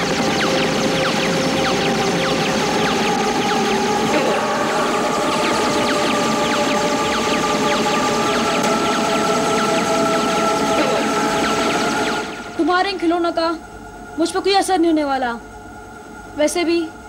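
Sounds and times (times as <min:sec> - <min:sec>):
laser gun zaps: 0:00.0 - 0:13.2
sustained synth music: 0:00.0 - 0:16.3.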